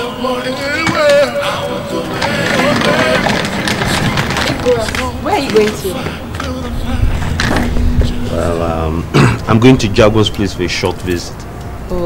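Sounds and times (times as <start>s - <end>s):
suitcase wheels rolling on concrete: 0.0s - 8.7s
soft background music: 0.0s - 12.0s.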